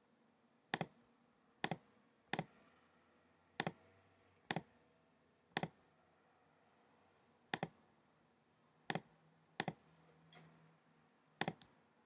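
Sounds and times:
computer mouse clicks: 0.7 - 1.0, 1.6 - 2.6, 3.6 - 3.8, 4.5 - 4.7, 5.6 - 5.8, 7.5 - 7.8, 8.9 - 10.5, 11.4 - 11.8.

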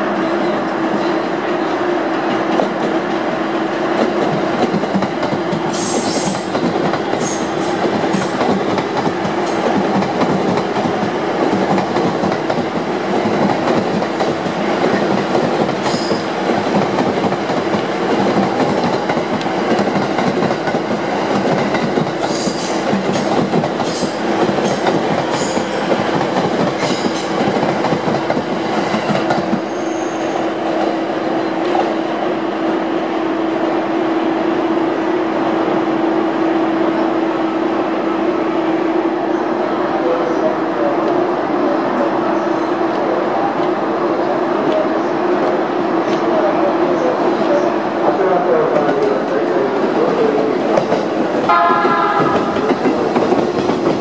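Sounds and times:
train rumbling over rail joints: 0.1 - 32.1, 42.6 - 54.0
high wheel squeals: 29.6 - 30.4.

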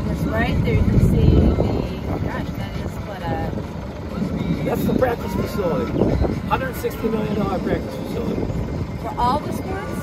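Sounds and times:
faint voices: 0.0 - 10.0
sailboat rumble: 0.0 - 10.0
wind on microphone: 0.0 - 10.0.

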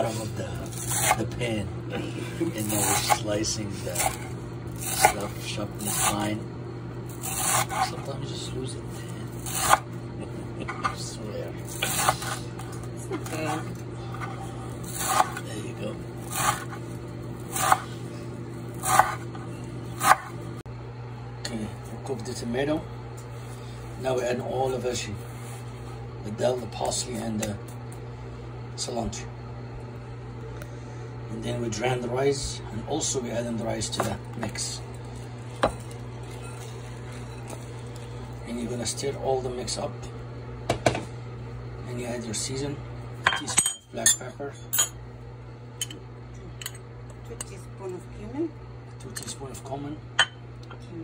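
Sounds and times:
steady low hum: 0.0 - 51.0
knife chopping herbs on board: 18.8 - 19.2.

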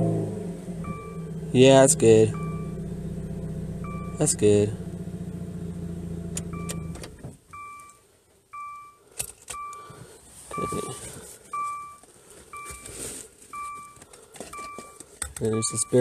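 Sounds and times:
low hum of car: 0.0 - 9.0
car warning chime dinging: 0.8 - 5.0, 6.3 - 16.0.

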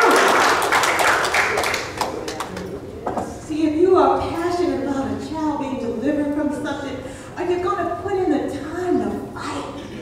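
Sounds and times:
crowd applauding: 0.0 - 2.7.

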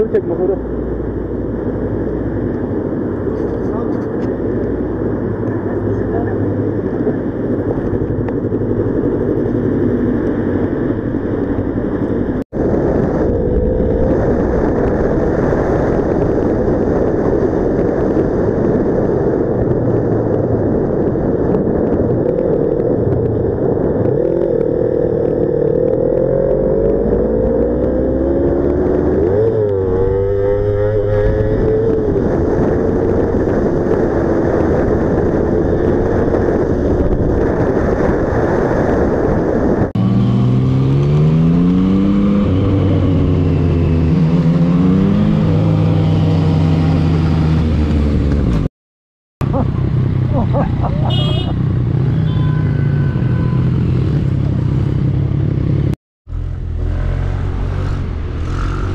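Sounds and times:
road and wind noise: 0.0 - 48.7, 49.4 - 58.9
motorcycle engine: 49.4 - 58.9.

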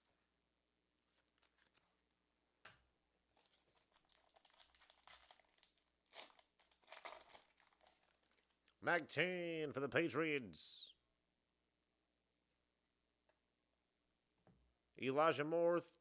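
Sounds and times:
foil pack tearing open: 3.4 - 8.6.

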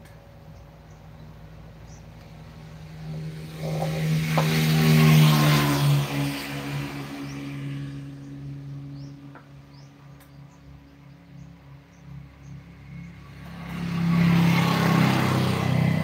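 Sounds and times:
vehicle passing by: 1.0 - 16.0.

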